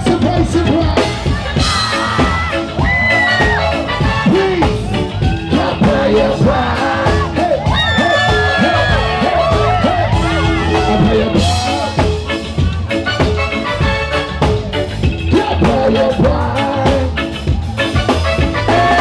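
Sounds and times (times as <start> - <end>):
man singing: 0.0 - 2.2, 2.9 - 19.0
reggae band through pa: 0.0 - 19.0.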